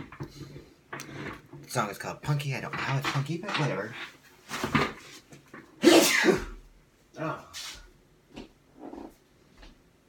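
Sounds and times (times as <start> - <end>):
woman sneezing: 5.8 - 6.6.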